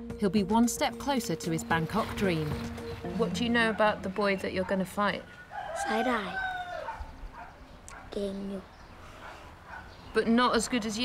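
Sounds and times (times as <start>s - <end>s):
rooster crowing: 5.2s - 7.5s
boy speaking: 8.1s - 8.8s.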